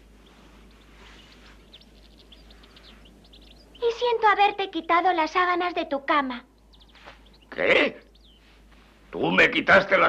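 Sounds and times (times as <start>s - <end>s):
birds chirping: 0.0s - 10.0s
steady background hiss: 0.0s - 10.0s.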